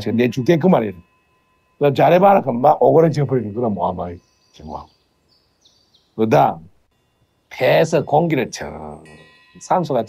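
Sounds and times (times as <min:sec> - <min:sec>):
faint high-pitched tones: 0:00.0 - 0:10.0.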